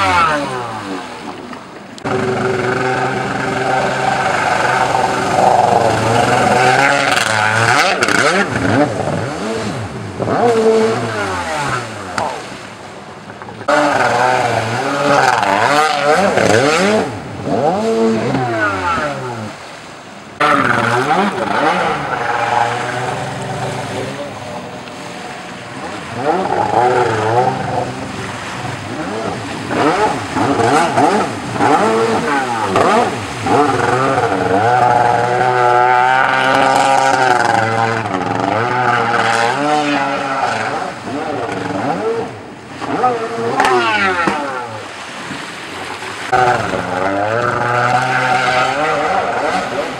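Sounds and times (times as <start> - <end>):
jet ski engine revving: 0.0 - 49.9.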